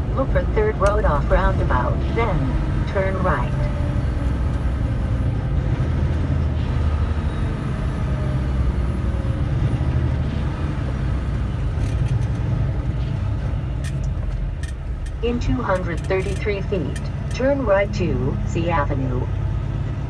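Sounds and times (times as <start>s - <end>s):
diesel truck engine running: 0.0s - 20.0s.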